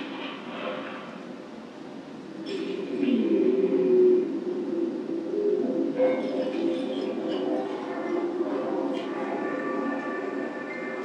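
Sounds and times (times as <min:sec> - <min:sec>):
layered drone over loudspeakers: 0:00.0 - 0:11.0.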